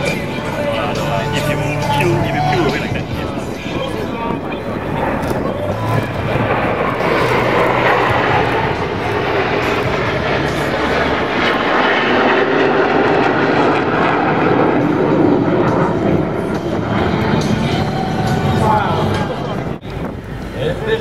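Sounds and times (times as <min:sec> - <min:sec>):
fighter jets flying past: 0:00.0 - 0:21.0.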